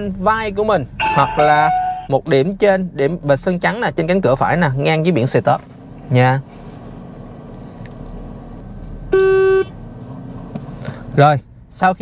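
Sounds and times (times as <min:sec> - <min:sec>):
car cabin engine hum: 0:00.0 - 0:12.0
loud electronic beep: 0:01.0 - 0:02.1, 0:09.1 - 0:09.7.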